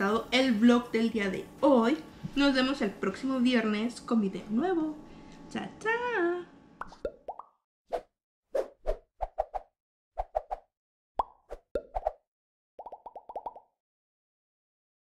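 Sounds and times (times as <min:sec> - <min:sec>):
cartoon plop pops: 0:06.8 - 0:07.6, 0:11.2 - 0:12.2, 0:12.8 - 0:13.7.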